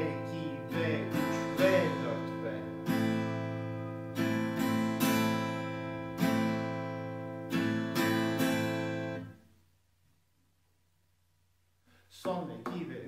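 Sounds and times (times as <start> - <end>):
acoustic guitar strumming: 0.0 - 9.4.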